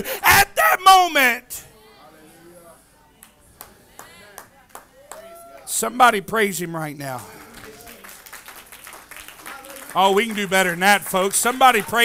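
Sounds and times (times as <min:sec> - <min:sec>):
faint hand claps: 0:03.2 - 0:05.3, 0:07.2 - 0:10.5.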